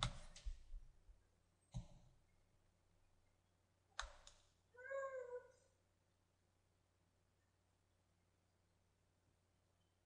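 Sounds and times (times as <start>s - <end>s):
cat meowing: 4.8s - 5.6s.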